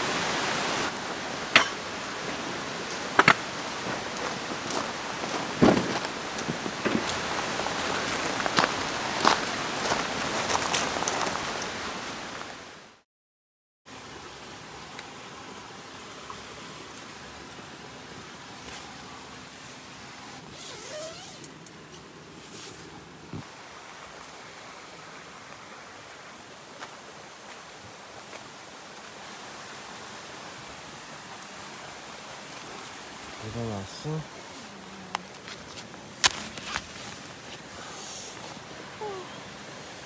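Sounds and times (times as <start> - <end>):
steady outdoor hiss: 0.0 - 13.0, 13.9 - 40.0
camping gear being handled: 2.9 - 11.7, 20.4 - 23.5, 34.4 - 38.8.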